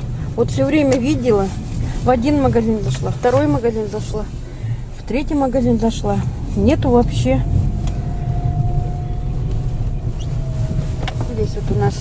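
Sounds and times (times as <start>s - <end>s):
car engine and road rumble: 0.0s - 12.0s
thin steady whine: 6.2s - 12.0s.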